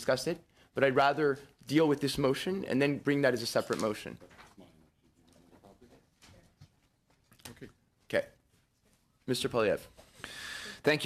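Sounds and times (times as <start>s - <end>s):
man speaking: 0.0s - 6.1s, 7.4s - 8.4s, 9.2s - 11.0s.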